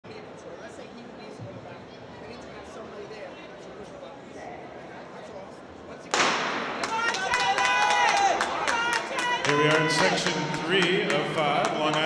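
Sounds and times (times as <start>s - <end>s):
starter's pistol shot: 6.1s - 6.8s
spectators shouting and cheering: 6.7s - 12.0s.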